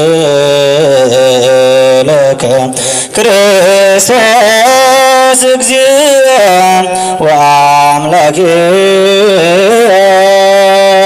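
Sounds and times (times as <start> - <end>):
man singing liturgical chant: 0.0 - 11.0.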